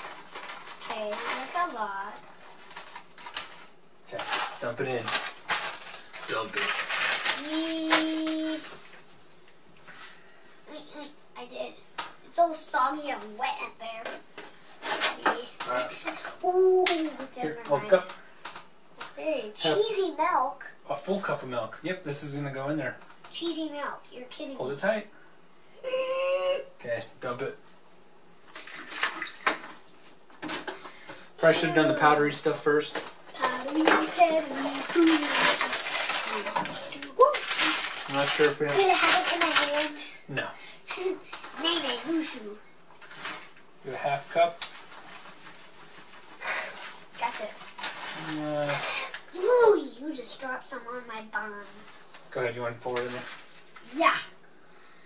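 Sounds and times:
plastic bag crinkling: 0.0 - 9.0, 30.4 - 40.2, 40.9 - 49.7, 51.8 - 54.0.

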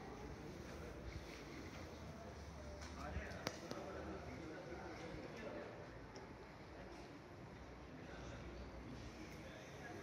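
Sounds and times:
murmur of distant voices: 0.0 - 10.0.

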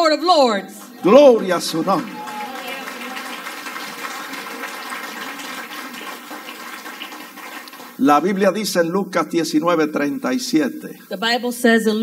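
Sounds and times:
people calling out praise: 0.2 - 6.0
congregation applauding: 0.8 - 8.7.

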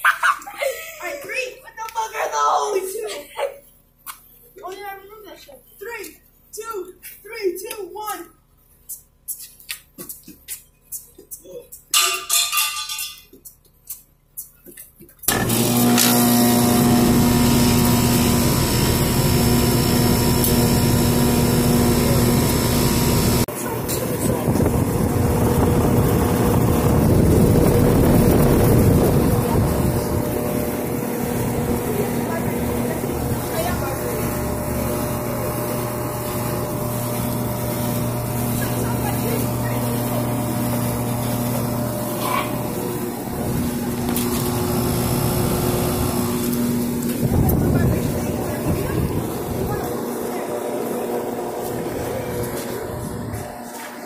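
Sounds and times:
compressor humming: 15.2 - 54.0
air conditioner fan rushing: 15.3 - 54.0.

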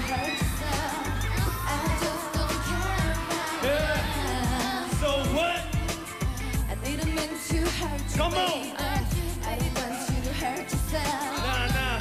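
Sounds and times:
pop song with vocals: 0.0 - 12.0.

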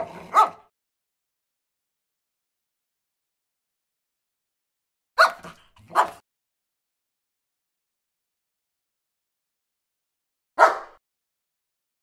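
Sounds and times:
dog barking: 0.0 - 0.7, 5.2 - 6.2, 10.6 - 11.0.

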